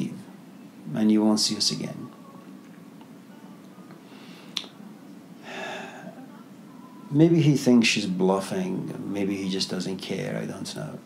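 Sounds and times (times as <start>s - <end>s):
low room hum: 0.0s - 11.0s
soft intake of breath: 4.0s - 4.6s, 5.4s - 6.2s.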